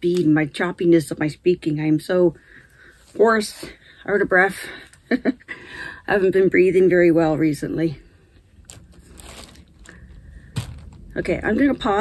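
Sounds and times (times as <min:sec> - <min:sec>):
woman breathing faintly: 0:09.7 - 0:11.1.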